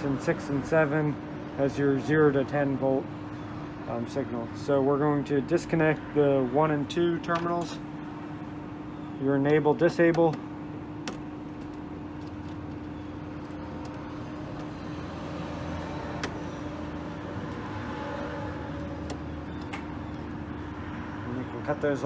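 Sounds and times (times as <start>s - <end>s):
steady mechanical hum: 0.0s - 22.0s.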